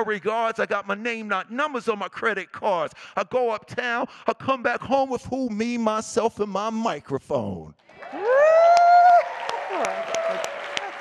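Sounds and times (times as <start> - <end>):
amplified woo shout: 7.9 - 11.0
audience applause: 7.9 - 11.0
scattered cheers: 7.9 - 11.0.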